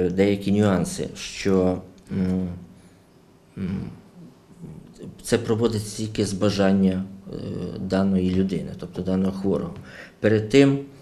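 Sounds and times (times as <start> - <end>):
man humming mmm: 3.6 - 4.9.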